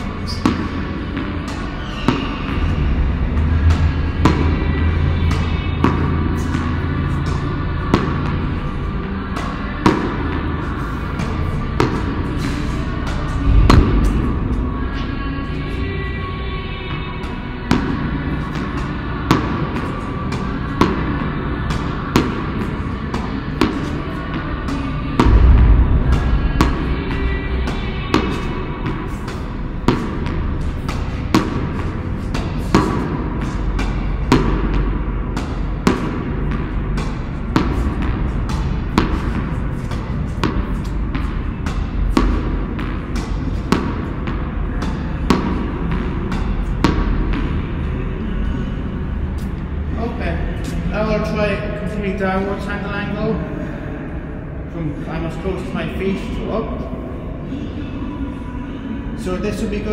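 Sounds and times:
tennis racket hitting ball: 0:00.0 - 0:02.6, 0:03.6 - 0:15.2, 0:17.2 - 0:47.6
background music: 0:00.0 - 0:59.9
deep boom: 0:13.4 - 0:15.6, 0:25.2 - 0:28.8.

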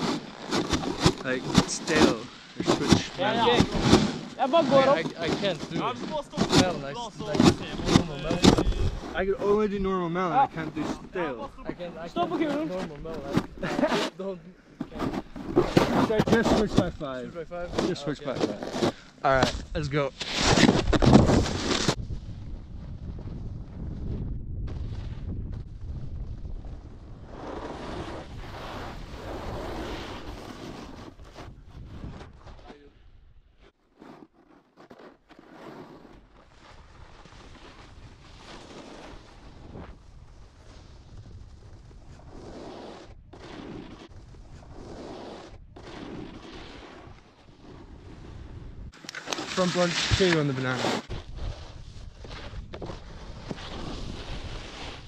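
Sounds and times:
snowboard scraping on snow: 0:00.0 - 0:22.1, 0:27.2 - 0:32.8, 0:33.9 - 0:55.0
wind on microphone: 0:20.8 - 0:32.6.

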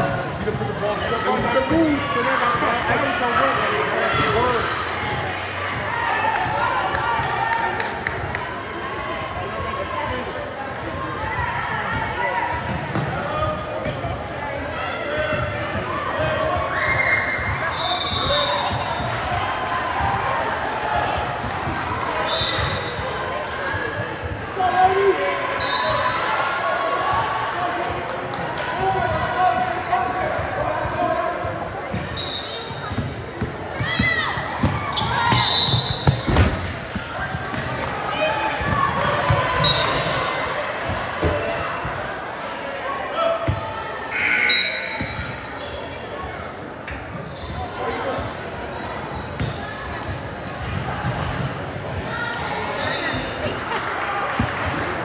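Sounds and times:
spectators chattering: 0:00.0 - 0:55.0.

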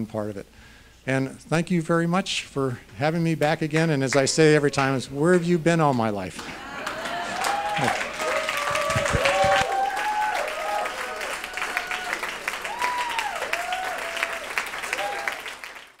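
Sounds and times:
audience applauding: 0:06.4 - 0:16.0.

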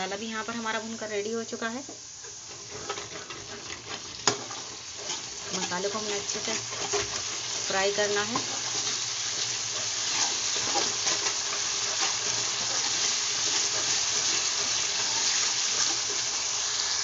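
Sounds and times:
spice paste sizzling in oil: 0:00.0 - 0:17.0
spoon stirring in pan: 0:02.2 - 0:16.6.

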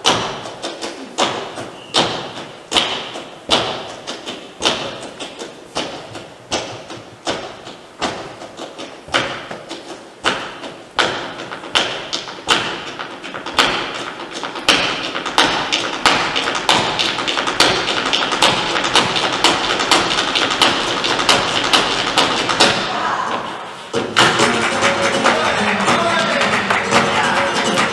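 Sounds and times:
dancer's shoes striking wooden stage: 0:00.0 - 0:27.9.

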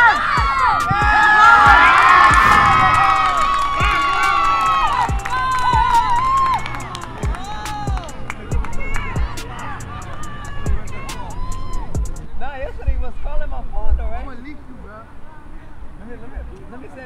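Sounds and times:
people shouting and cheering: 0:00.0 - 0:12.2.

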